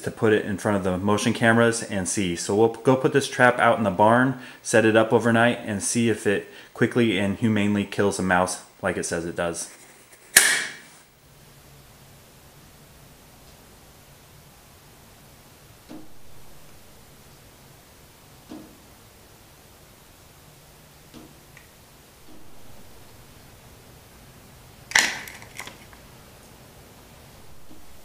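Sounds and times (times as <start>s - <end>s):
faint steady hum: 0.0s - 28.0s
mouse trap snapping shut: 10.4s - 10.8s, 24.9s - 25.8s
trap clicking as it settles: 24.9s - 25.9s.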